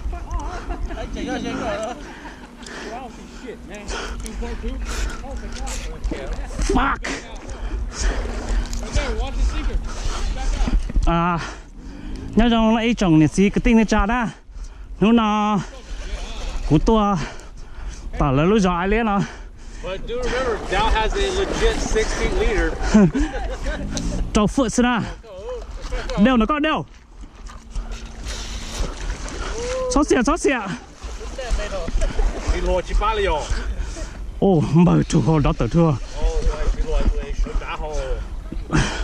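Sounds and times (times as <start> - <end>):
steady low rumble: 0.0 - 39.0.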